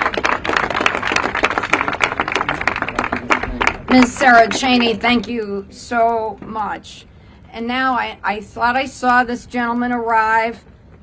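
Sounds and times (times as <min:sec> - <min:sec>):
crowd applauding: 0:00.0 - 0:04.5.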